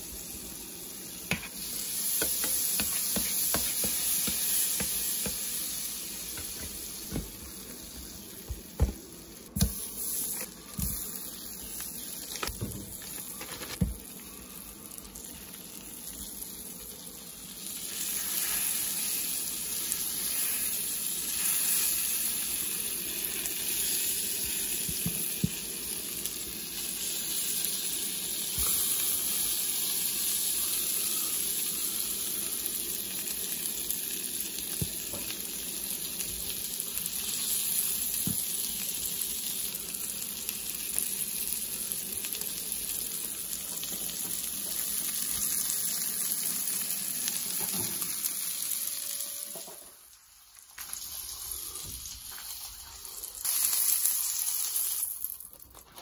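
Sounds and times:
hot dogs sizzling on griddle: 0:00.0 - 0:56.0.

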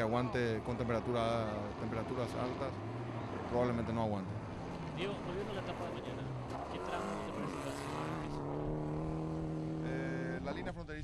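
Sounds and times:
rally car engine at speed: 0:00.0 - 0:10.7.

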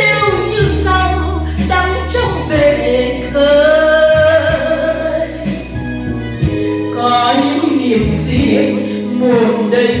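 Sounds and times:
instrumental accompaniment with bass: 0:00.0 - 0:10.0
woman singing into microphone: 0:00.0 - 0:10.0.

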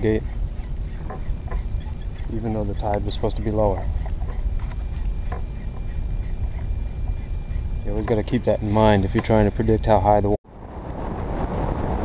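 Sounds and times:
water rumble: 0:00.0 - 0:12.0
wind noise on microphone: 0:00.0 - 0:12.0
faint knocks: 0:00.3 - 0:08.3.

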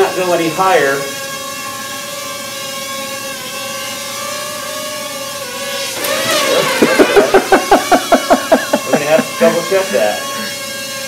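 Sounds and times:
quadcopter propellers humming: 0:00.0 - 0:11.0.

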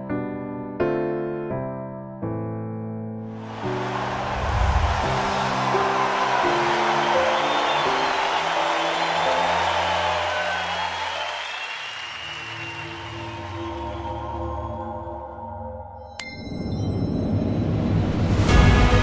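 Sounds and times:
crowd cheering and applause: 0:03.3 - 0:14.8.

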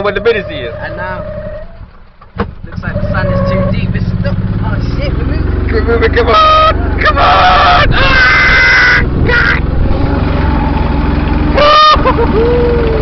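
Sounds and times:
golf buggy driving through sand: 0:02.7 - 0:13.0
person whooping: 0:06.5 - 0:09.6, 0:11.6 - 0:13.0.

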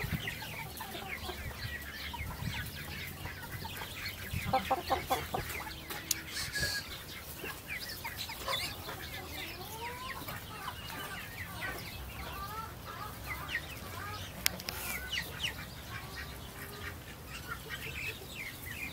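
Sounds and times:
chickens clucking and calling: 0:00.0 - 0:18.9.

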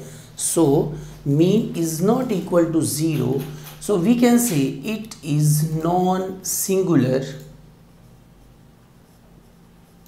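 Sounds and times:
steady low hum: 0:00.0 - 0:10.0
marker scratching on whiteboard: 0:08.0 - 0:10.0.

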